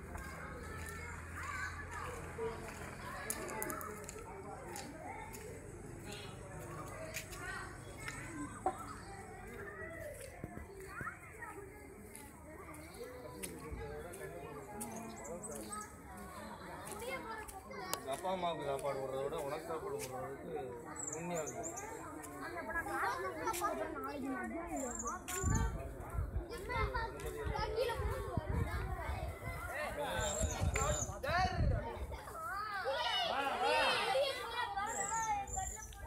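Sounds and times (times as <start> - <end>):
children talking and calling out: 0.0 - 36.0.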